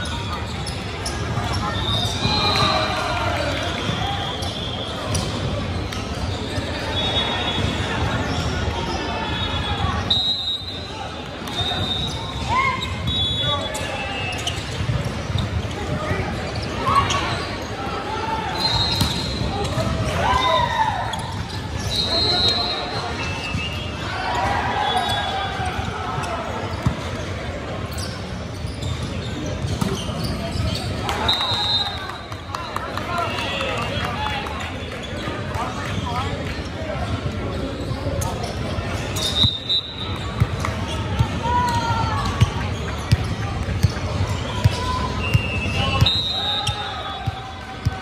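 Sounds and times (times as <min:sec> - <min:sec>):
sneakers squeaking: 0:00.0 - 0:34.0, 0:34.8 - 0:48.0.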